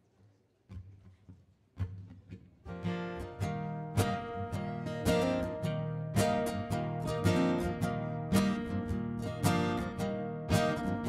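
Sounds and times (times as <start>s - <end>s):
acoustic guitars strumming: 1.9s - 11.0s.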